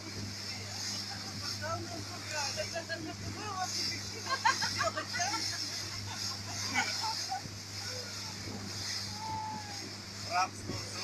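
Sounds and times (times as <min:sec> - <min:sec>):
motorboat engine drone: 0:00.0 - 0:11.0
wind and water rushing: 0:00.0 - 0:11.0.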